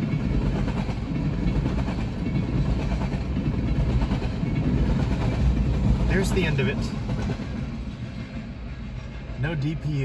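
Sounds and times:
freight train rolling: 0.0 - 10.0.

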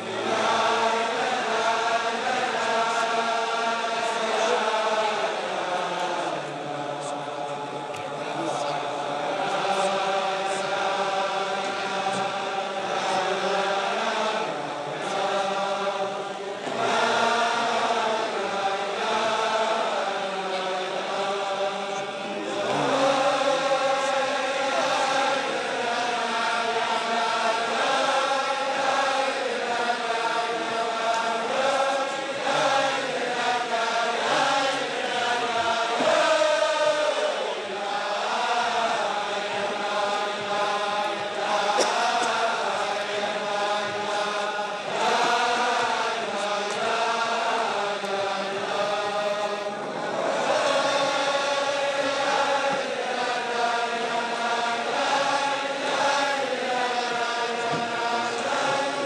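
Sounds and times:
crowd of men singing in unison: 0.0 - 59.0.

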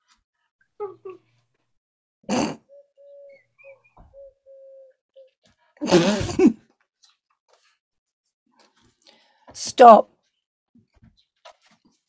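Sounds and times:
people laughing: 0.8 - 1.4, 5.8 - 6.6.

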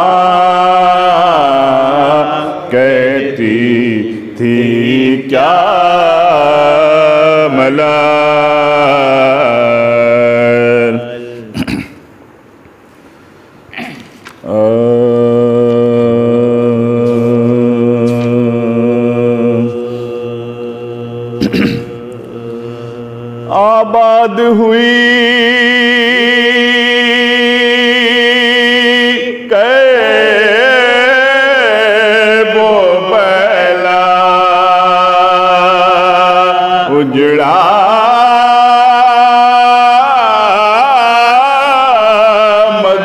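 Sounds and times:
men chanting a lament: 0.0 - 11.7, 14.4 - 43.0.

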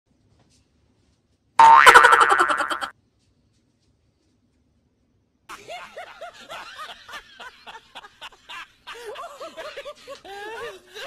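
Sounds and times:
warbling comedy tone: 1.6 - 2.9.

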